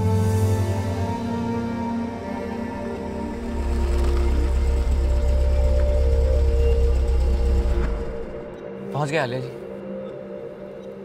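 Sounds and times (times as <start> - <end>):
background music: 0.0 - 11.0
car engine rumble: 0.4 - 8.5.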